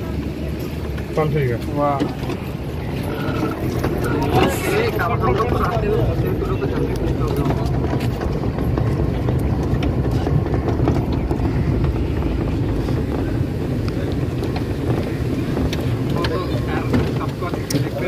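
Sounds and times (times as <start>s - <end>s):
faint voices: 0.0s - 18.0s
wind buffeting microphone: 0.0s - 18.0s.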